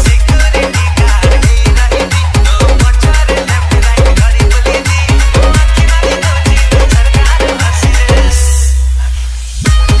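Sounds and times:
electronic dance music: 0:00.0 - 0:10.0.

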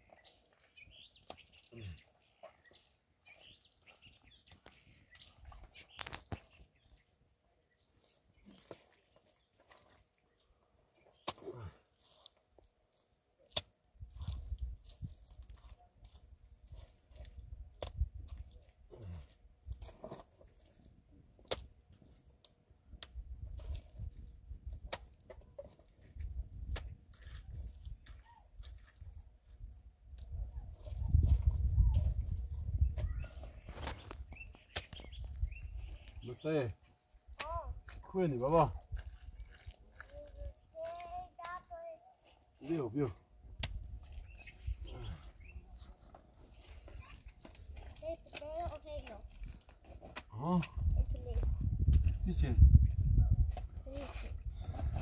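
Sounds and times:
hands working wet mud and stones: 0:00.0 - 0:55.0.

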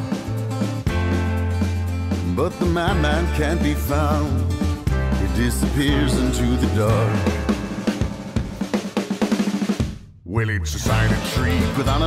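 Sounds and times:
drum fill and roll: 0:00.0 - 0:12.0.

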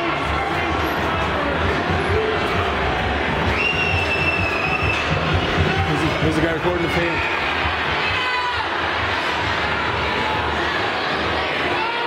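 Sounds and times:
arena crowd noise and voices: 0:00.0 - 0:12.0
music playing: 0:00.0 - 0:12.0.

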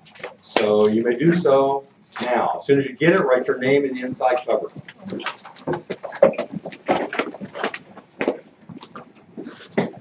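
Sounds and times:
textbooks being handled: 0:00.0 - 0:01.0, 0:04.2 - 0:10.0
chairs knocking and scraping: 0:04.7 - 0:10.0.

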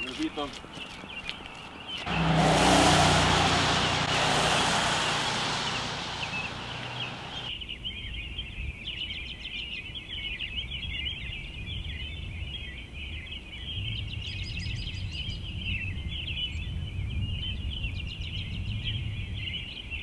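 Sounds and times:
chorus of high chirps: 0:03.2 - 0:07.5.

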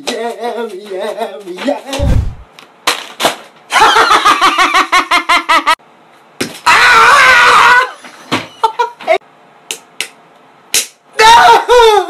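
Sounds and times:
man screaming: 0:11.2 - 0:12.0.

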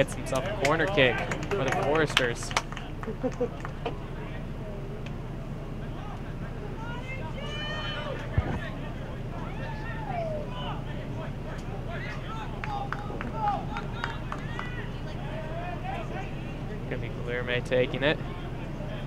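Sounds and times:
players shouting: 0:00.0 - 0:19.0
steady low hum: 0:00.0 - 0:19.0.

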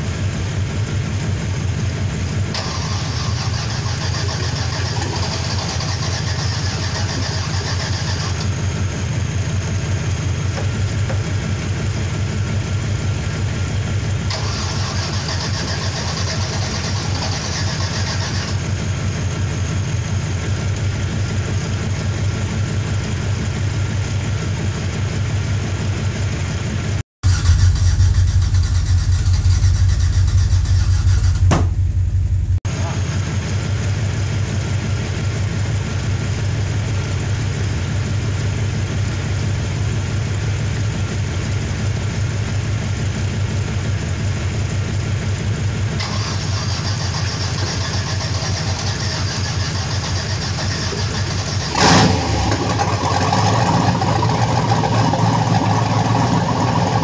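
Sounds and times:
car engine idling: 0:00.0 - 0:57.0.

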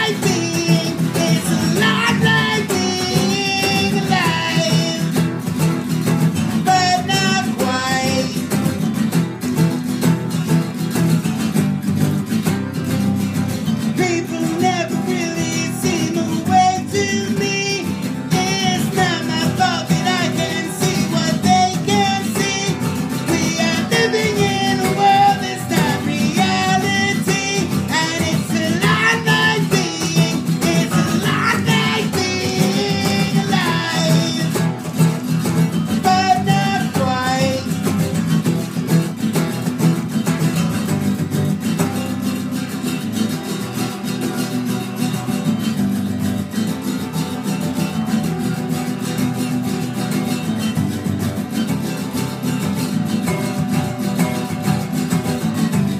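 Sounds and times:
acoustic guitars strumming chords: 0:00.0 - 0:55.9.

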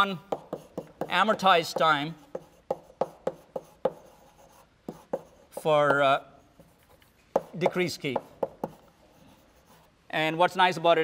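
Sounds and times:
chalk tapping on blackboard: 0:00.1 - 0:09.9.

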